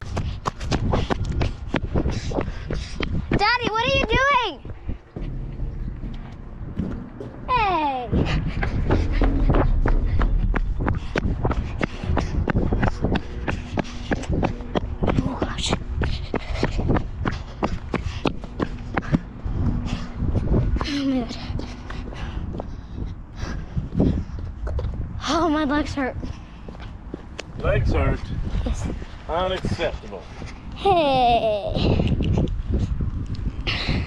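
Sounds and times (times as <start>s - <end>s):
wind rumbling on microphone: 0.0s - 34.0s
girl's wordless calling: 7.5s - 8.2s.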